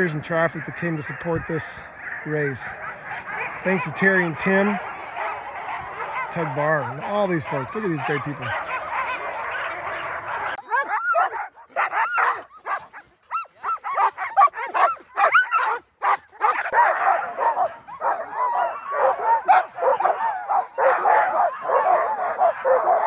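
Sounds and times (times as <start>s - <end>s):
dogs yipping barking and howling: 0.0s - 23.0s.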